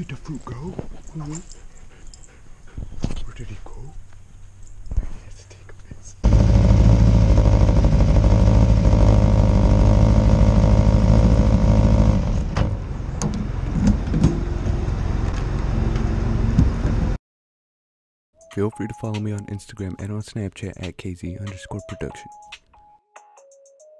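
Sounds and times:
motorcycle engine running: 0:06.2 - 0:12.6.

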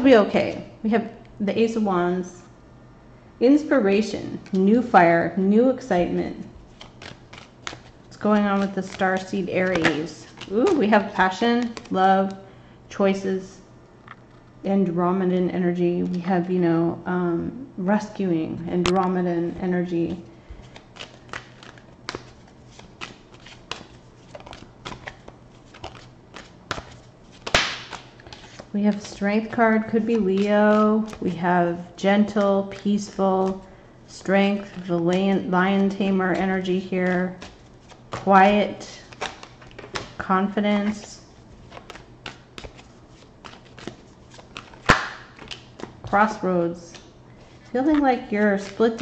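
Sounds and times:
cards being shuffled: 0:06.4 - 0:12.4, 0:20.5 - 0:31.4, 0:32.2 - 0:33.6, 0:34.2 - 0:49.0
cards snapping and swishing: 0:06.7 - 0:10.8, 0:20.6 - 0:29.2, 0:39.0 - 0:40.2, 0:41.6 - 0:46.0
sharp card click: 0:27.4 - 0:28.0.

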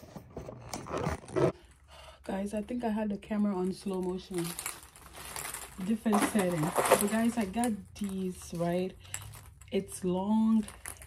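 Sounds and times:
slowed bag rustling: 0:04.3 - 0:09.5.

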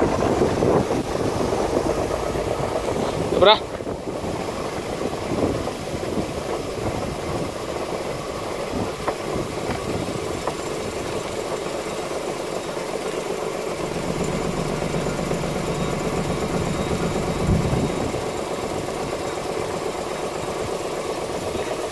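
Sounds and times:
vibratory sieve humming: 0:00.0 - 0:21.9.

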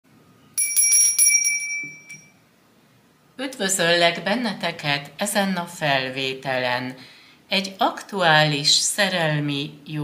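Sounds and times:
small high-pitched bell ringing: 0:00.6 - 0:02.4.

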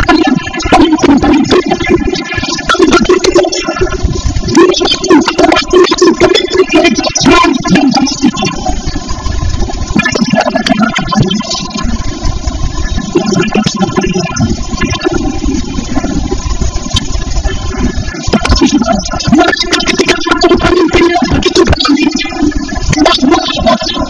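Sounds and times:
steady low rumble: 0:00.0 - 0:24.0
voices: 0:00.0 - 0:24.0.

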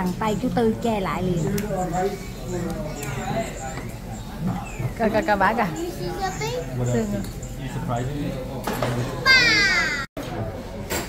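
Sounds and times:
child chattering: 0:06.0 - 0:06.7.

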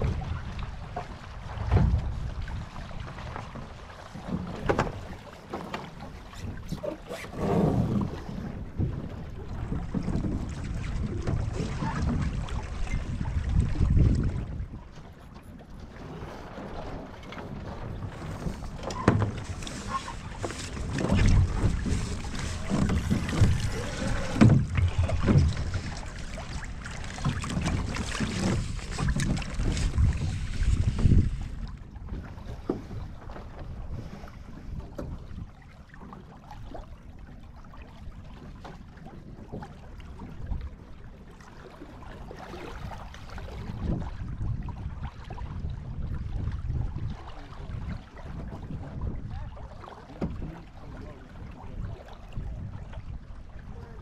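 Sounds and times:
water rushing along boat hull: 0:00.0 - 0:54.0
wind buffeting microphone: 0:06.1 - 0:15.2, 0:16.5 - 0:35.6, 0:42.6 - 0:54.0.

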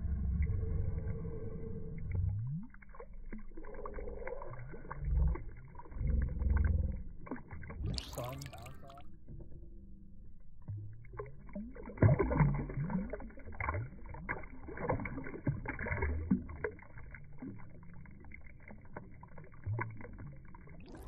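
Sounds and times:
small gurgle: 0:00.0 - 0:09.1, 0:10.6 - 0:21.0
fish splashing in water: 0:02.6 - 0:09.0, 0:10.7 - 0:21.0
water lapping: 0:02.7 - 0:09.0.

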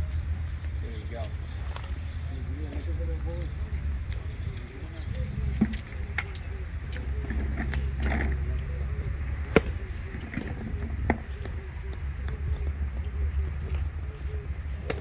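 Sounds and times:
low wind rumble on microphone: 0:00.0 - 0:15.0.

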